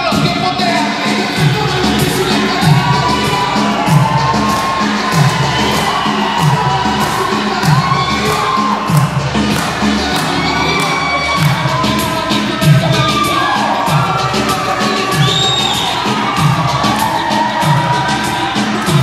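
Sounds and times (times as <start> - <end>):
audience cheering and shouting: 0.0 - 19.0
reggaeton dance music: 0.0 - 19.0.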